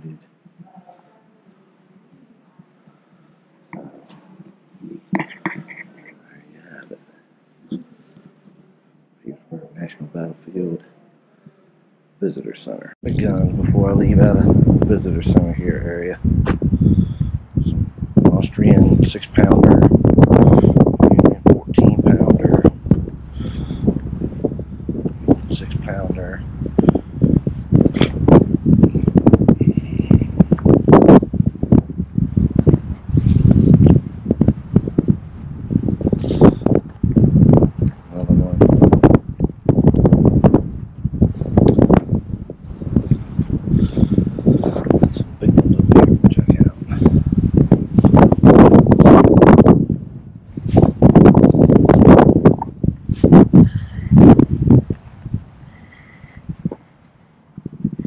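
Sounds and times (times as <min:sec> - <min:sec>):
wind buffeting microphone: 0:13.0 - 0:58.0.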